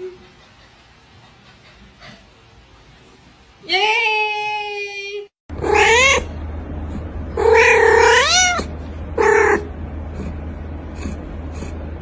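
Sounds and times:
cat meowing: 5.6 - 6.3, 7.4 - 9.7.

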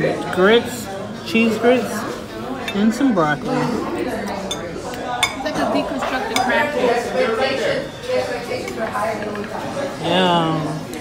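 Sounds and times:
murmur of people talking: 0.0 - 11.0
cutlery and plates clinking: 2.6 - 7.0, 8.0 - 9.9.

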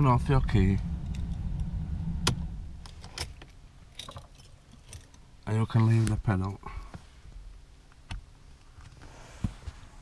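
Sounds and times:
low hum: 0.0 - 5.1.

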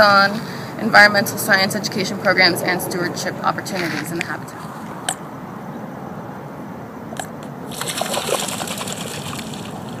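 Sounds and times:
water splashing and trickling: 7.7 - 10.0.

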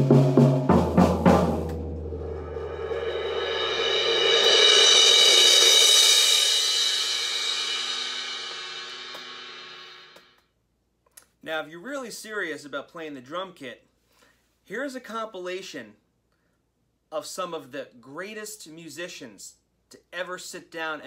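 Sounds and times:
mallet roll on cymbal: 1.7 - 10.3.

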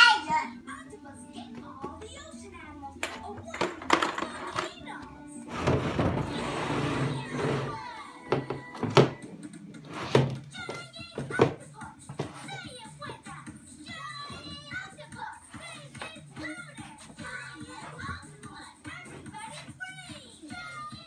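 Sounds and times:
child's voice: 0.0 - 5.3, 6.3 - 8.9, 10.4 - 21.0
background music: 0.0 - 21.0
furniture scraping on floor: 5.4 - 9.2, 9.8 - 10.4
plastic furniture thunking on wooden floor: 5.5 - 7.6, 8.3 - 9.3, 10.0 - 10.4.

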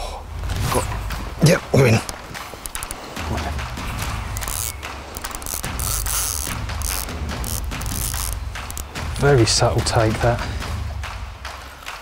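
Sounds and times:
fishing reel ratcheting clicks: 2.6 - 3.0, 4.3 - 9.0.

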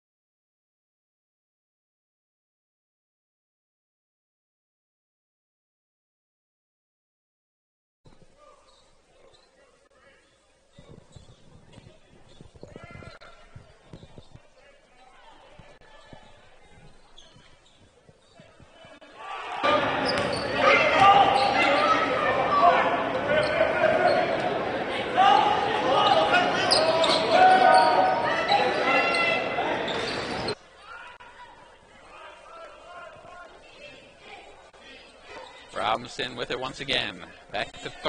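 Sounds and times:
many voices echoing: 8.3 - 38.0
ball bouncing on hardwood court: 20.1 - 20.4.

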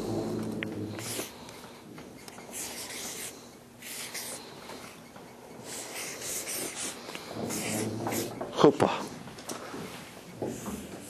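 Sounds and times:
marker pen scratching on paper: 0.0 - 8.8, 9.8 - 11.0.

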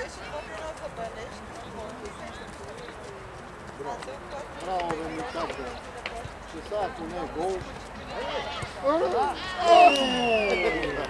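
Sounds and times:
voices shouting and calling out: 3.8 - 11.0.

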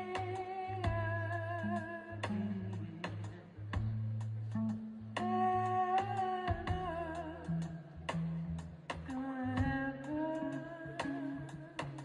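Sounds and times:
bass line: 0.0 - 12.0
sparse drum ticks: 0.0 - 12.0.

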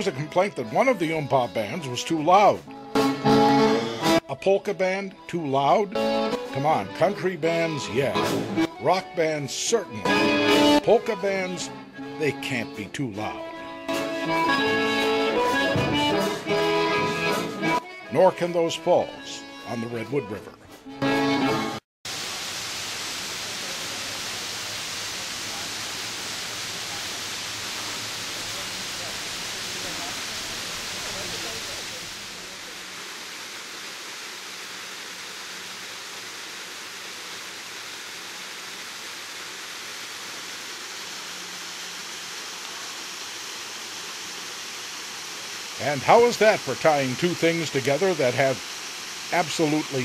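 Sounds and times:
waterfall rushing: 22.1 - 50.0.

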